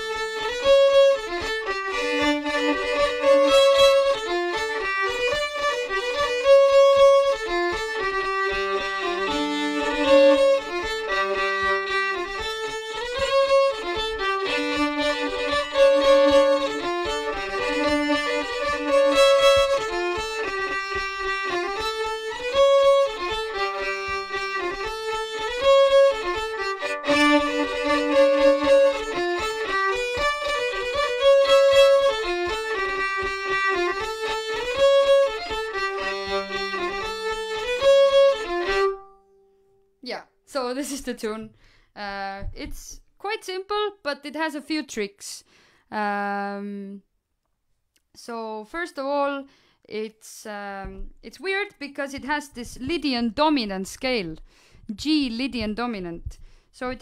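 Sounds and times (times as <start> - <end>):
solo fiddle dance tune: 0.0 - 39.8, 40.5 - 43.7, 50.8 - 57.0.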